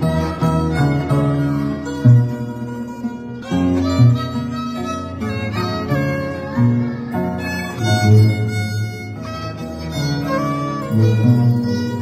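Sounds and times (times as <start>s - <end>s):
bowed violin melody: 0.0s - 12.0s.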